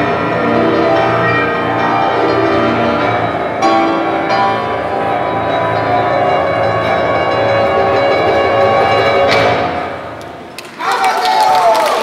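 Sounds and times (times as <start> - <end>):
double bass: 0.0 - 10.1
grand piano: 0.0 - 10.6.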